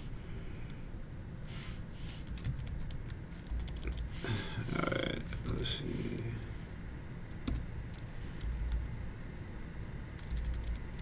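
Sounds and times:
keyboard key clicks: 7.3s - 8.8s.

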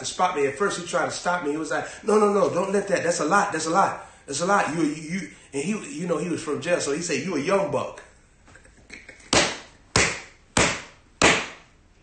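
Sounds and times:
sharp hand slaps: 9.2s - 11.7s.

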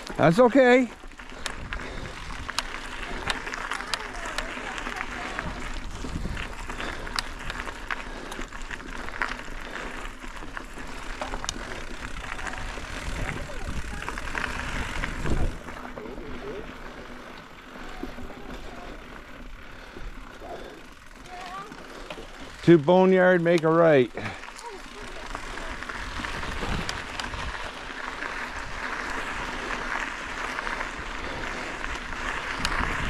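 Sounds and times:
bike rattling over bumps: 0.0s - 33.0s
knobby tyres rolling on dirt: 0.0s - 33.0s.

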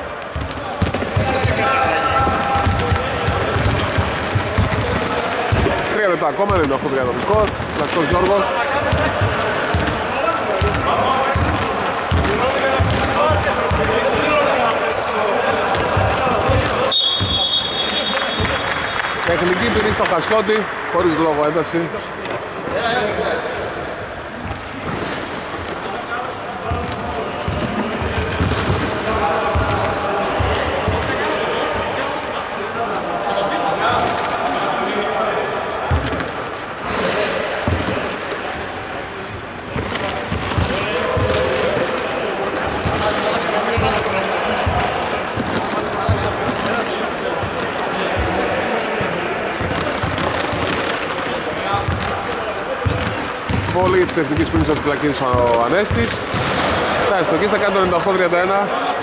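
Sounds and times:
men talking: 0.0s - 59.0s
basketball bouncing on hardwood: 2.2s - 5.7s, 8.9s - 10.0s, 10.6s - 13.9s, 39.8s - 41.5s, 52.8s - 54.6s.

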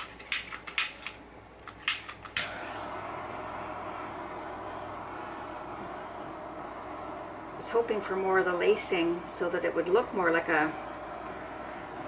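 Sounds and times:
torch igniter clicks: 0.0s - 2.6s
torch flame hissing: 1.8s - 12.0s.

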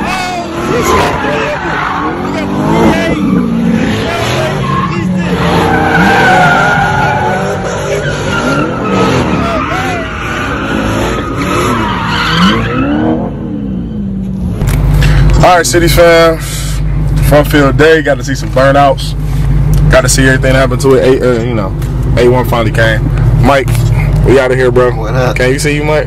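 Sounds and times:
tires squealing on pavement: 0.0s - 14.0s
car engine revving: 0.0s - 26.0s.

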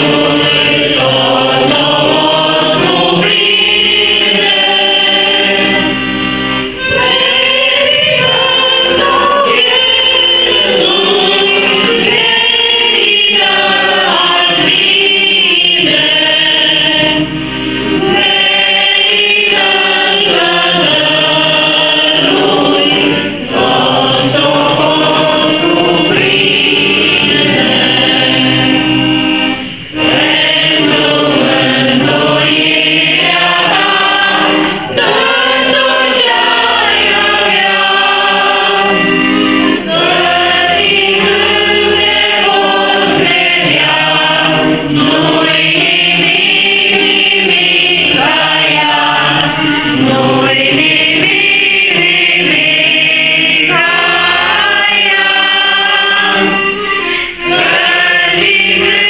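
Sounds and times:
group singing a hymn: 0.0s - 59.0s.

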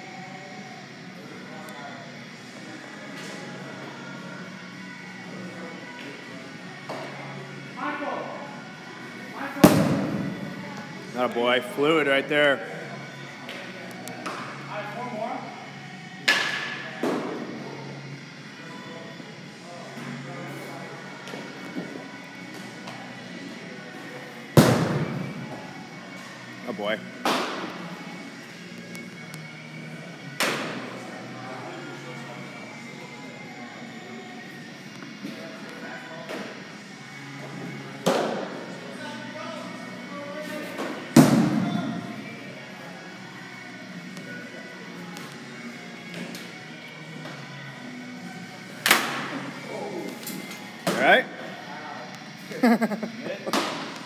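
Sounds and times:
faint background music: 0.0s - 54.0s.

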